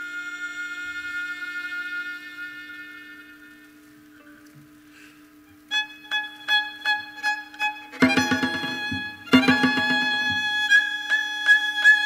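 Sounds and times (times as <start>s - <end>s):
high violin note: 0.0s - 4.4s, 5.7s - 12.0s.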